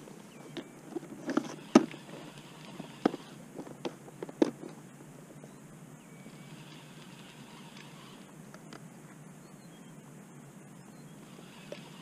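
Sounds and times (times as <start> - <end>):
quiet open-air background: 0.0 - 12.0.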